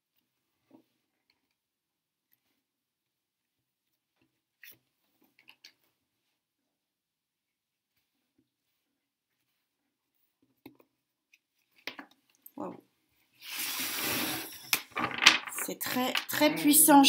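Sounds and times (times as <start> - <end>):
cards sliding across wooden table: 13.4 - 15.6.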